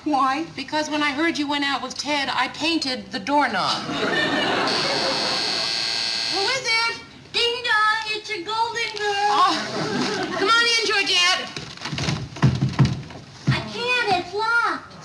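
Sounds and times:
studio audience laughing: 3.7 - 5.7, 9.5 - 10.5
voices: 6.3 - 11.6
dull thumps: 11.5 - 13.7.

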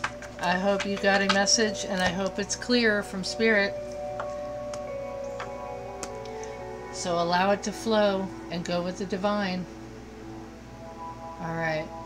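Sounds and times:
stones clicking on cards: 0.0 - 2.3
soft background music: 0.0 - 12.0.

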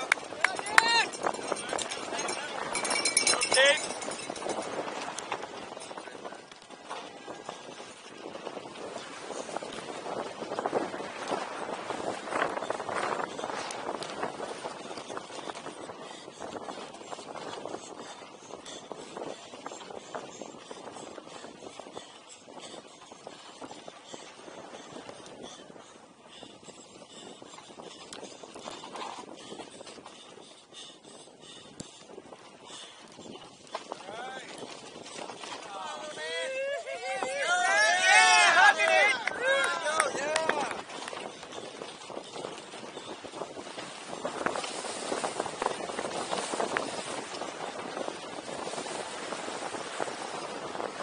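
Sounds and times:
spectators shouting and cheering: 0.2 - 1.1, 35.7 - 40.8.

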